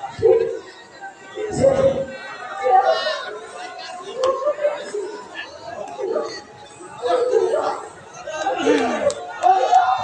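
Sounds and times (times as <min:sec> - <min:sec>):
background chatter: 0:00.0 - 0:10.0
voices talking: 0:00.0 - 0:10.0.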